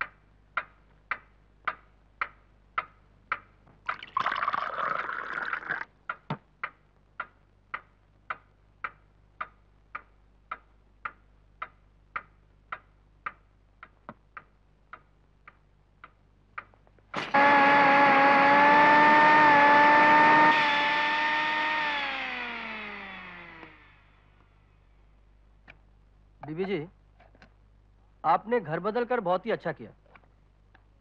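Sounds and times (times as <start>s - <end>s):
water drops falling: 3.8s - 5.9s
loud pitched screech: 17.2s - 23.5s.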